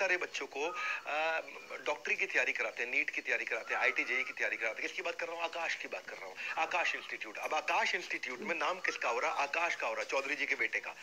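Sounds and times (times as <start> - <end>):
man lecturing: 0.0 - 11.0.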